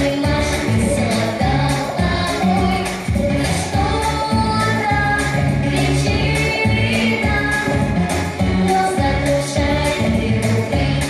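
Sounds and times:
backing track with bass line: 0.0s - 11.0s
girl singing pop song: 0.0s - 11.0s.

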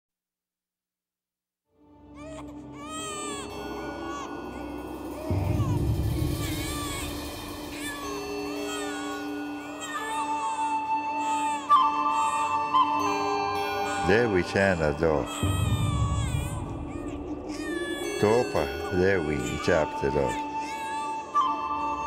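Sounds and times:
sustained musical drone: 2.0s - 22.0s
newborn baby crying: 2.1s - 22.0s
low rumble: 15.4s - 18.2s.

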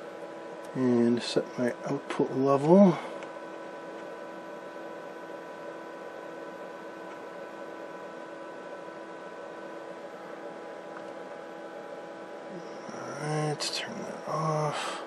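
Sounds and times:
electrical hum and hiss: 0.0s - 15.0s.

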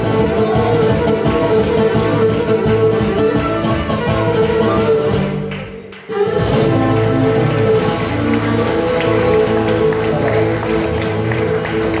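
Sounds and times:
strummed lute guitar and bass: 0.0s - 12.0s.

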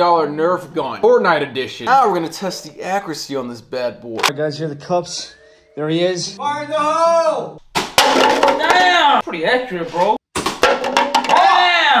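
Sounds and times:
person speaking: 0.6s - 7.6s.

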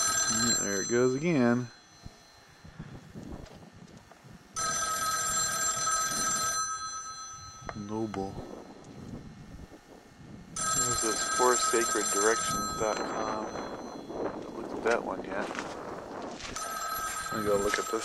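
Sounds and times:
payphone ringing: 0.0s - 2.4s, 4.6s - 8.9s, 10.6s - 14.9s, 16.4s - 18.0s.

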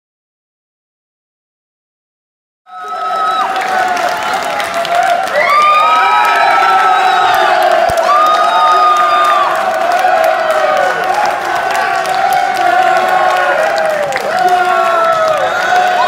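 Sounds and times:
crowd cheering and shouting: 2.7s - 16.0s
people clapping: 2.7s - 16.0s.

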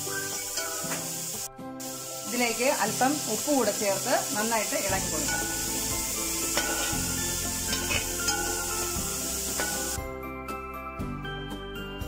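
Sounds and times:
vegetables sizzling in pan: 0.0s - 10.0s
metal spatula tapping pan: 6.4s - 7.1s, 7.7s - 8.6s, 9.6s - 10.0s.

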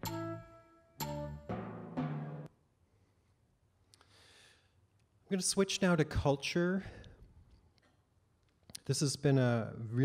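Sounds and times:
man lecturing over loudspeaker: 5.3s - 6.9s, 8.8s - 10.0s.

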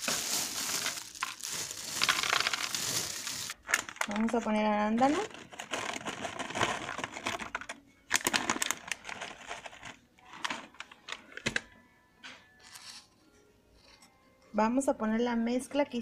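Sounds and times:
dried berries pattering into bowl: 0.0s - 4.4s
plastic bag rustling: 0.0s - 10.7s.

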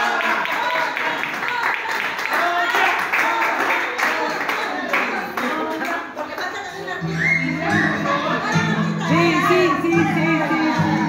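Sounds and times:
hand clapping: 0.0s - 6.0s
crowd voices: 0.0s - 11.0s
recorded music with singing: 5.9s - 11.0s.

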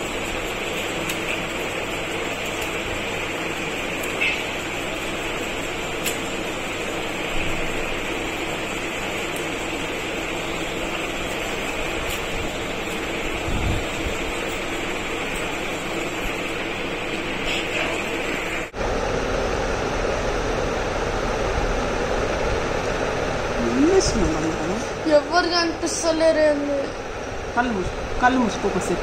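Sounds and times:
continuous hiss with low hum: 0.0s - 29.0s.

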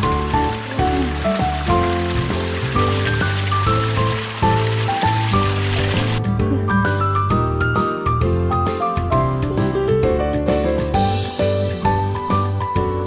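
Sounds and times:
small trickling stream: 0.0s - 6.2s
background music: 0.0s - 13.0s.

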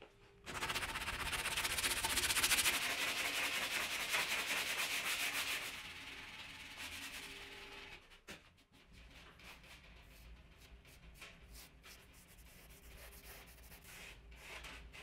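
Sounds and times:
sanding gritty scrubbing: 0.5s - 5.8s.

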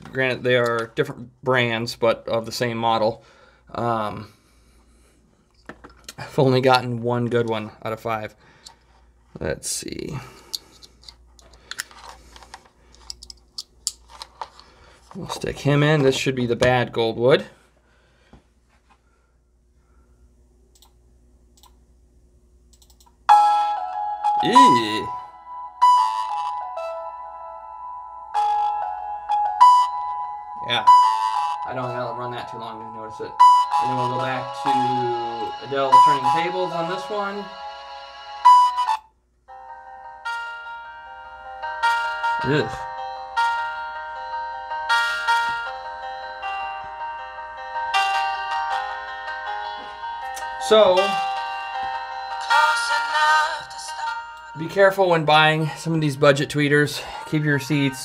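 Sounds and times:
small clicks and rustles of handling: 10.8s - 15.6s.

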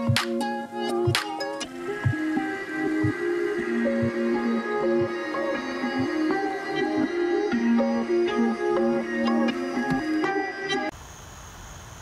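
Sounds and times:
background music with regular beat: 0.0s - 10.9s.

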